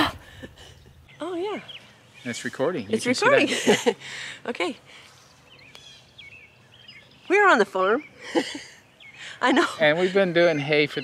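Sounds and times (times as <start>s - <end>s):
faint bird chirps: 5.0s - 11.0s.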